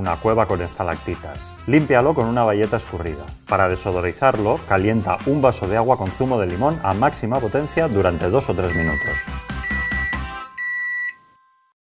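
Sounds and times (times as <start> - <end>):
closing music: 0.0 - 10.6
high electronic beep: 8.6 - 11.4.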